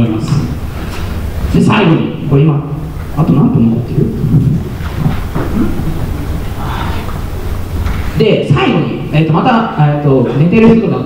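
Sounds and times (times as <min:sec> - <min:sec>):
microphone handling rumble: 0:00.0 - 0:09.2
microphone knocks: 0:03.9 - 0:06.2.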